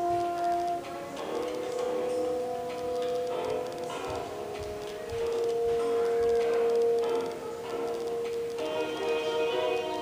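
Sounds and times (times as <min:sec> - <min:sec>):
instrumental film music from tv speaker: 0:00.0 - 0:10.0.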